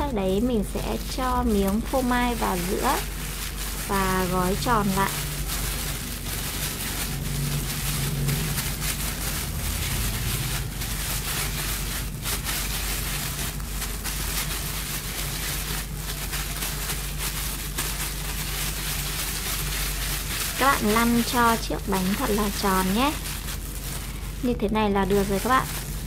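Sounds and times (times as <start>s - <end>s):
plastic gloves rustling: 0.0s - 26.0s.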